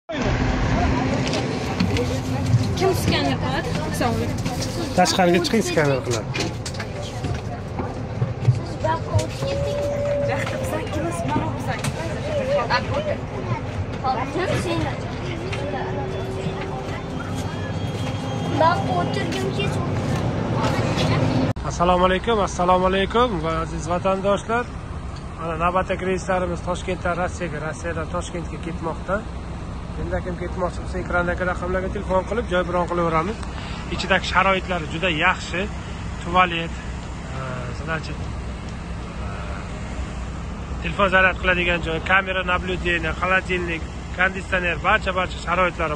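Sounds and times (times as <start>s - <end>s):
faint voices: 0.1s - 21.5s
bus engine idling: 0.1s - 45.9s
voices talking: 0.1s - 45.9s.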